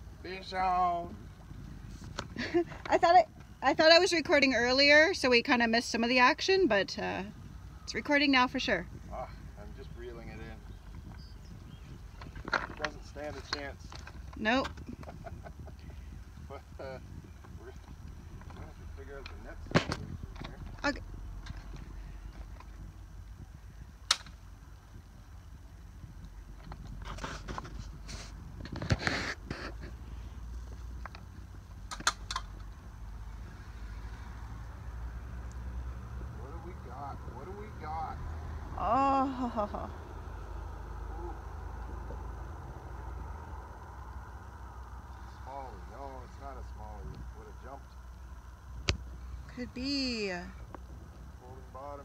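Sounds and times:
low outdoor rumble: 0.0 - 52.0
person laughing: 14.9 - 15.9
sharp clicks: 24.0 - 24.5, 31.0 - 32.8.

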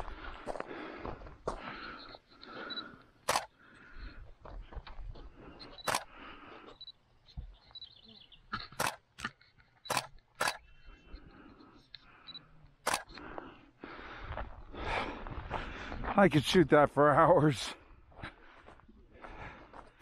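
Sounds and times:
camera shutter clicking: 3.2 - 3.5, 5.8 - 6.1, 8.8 - 9.0, 9.8 - 10.7, 12.8 - 13.2.

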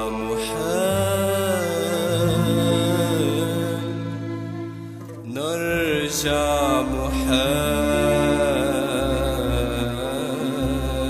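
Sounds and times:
man singing melismatic note: 0.0 - 4.5, 5.2 - 11.0
sustained musical accompaniment: 0.0 - 11.0.

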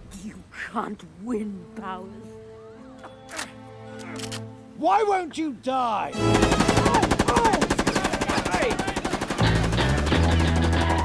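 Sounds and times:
machine-gun fire: 6.2 - 11.0
music with steady bass: 9.4 - 11.0.

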